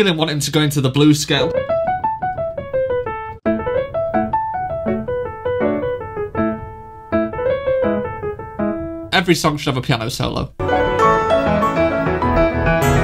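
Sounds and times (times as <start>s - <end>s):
solo piano melody: 1.4s - 9.1s, 10.6s - 13.0s.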